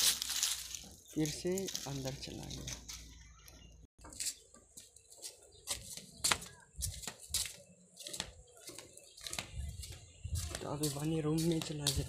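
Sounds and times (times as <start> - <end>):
rustling: 0.0 - 3.1
scuffing footsteps: 0.0 - 3.3, 4.0 - 12.0.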